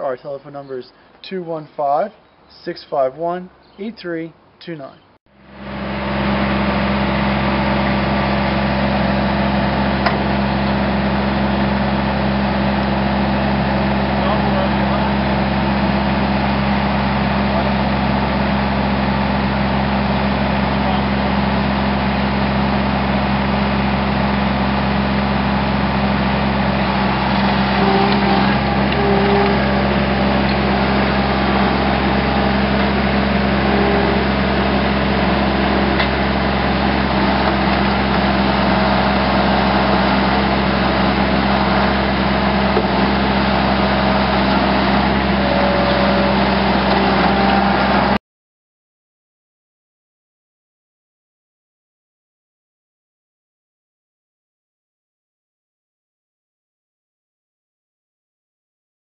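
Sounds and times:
skid-steer loader engine running: 0:05.3 - 0:48.2.

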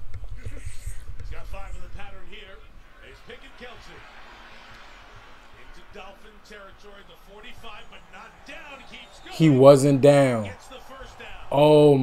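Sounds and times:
men commentating on television: 0:01.2 - 0:12.0.

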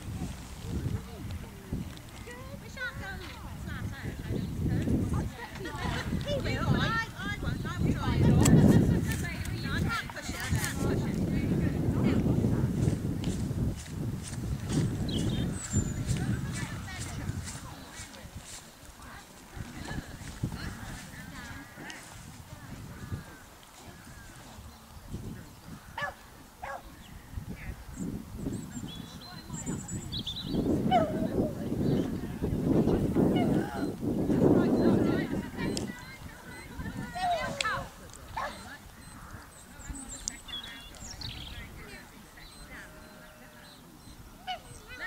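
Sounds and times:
wind rumbling on microphone: 0:00.0 - 0:45.0
distant voices talking: 0:14.2 - 0:45.0.

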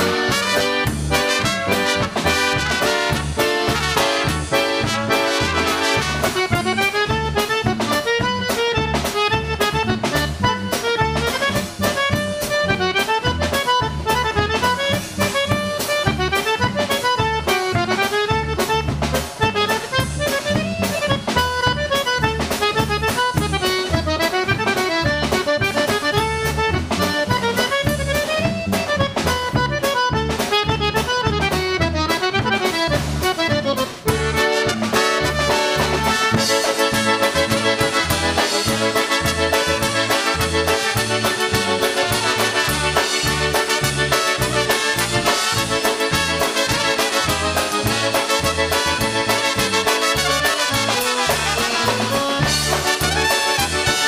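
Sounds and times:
accordion melody: 0:00.0 - 0:54.0
drum kit: 0:00.0 - 0:54.0
electric bass guitar: 0:00.0 - 0:54.0.

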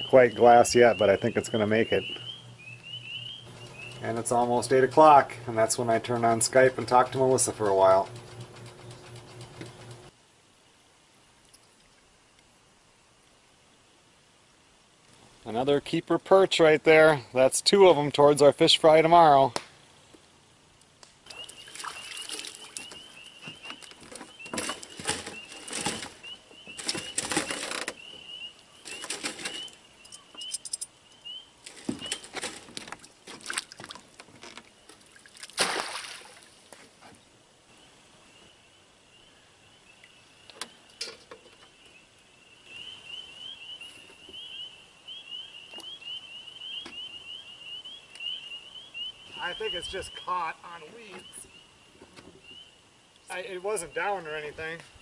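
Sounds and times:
splash in water: 0:21.4 - 0:22.9, 0:35.0 - 0:36.7
rustling and knocking of tackle: 0:22.2 - 0:28.2, 0:28.8 - 0:29.8, 0:31.6 - 0:35.1.

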